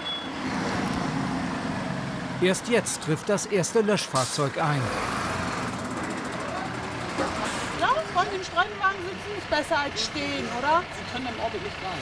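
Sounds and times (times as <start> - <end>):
fire engine running: 0.0 - 12.0.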